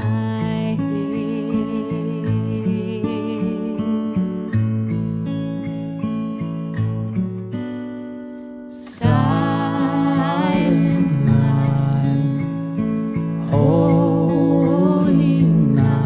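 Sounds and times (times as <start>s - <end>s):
acoustic guitar picking: 0.0s - 16.0s
strummed guitar chord: 8.9s - 16.0s.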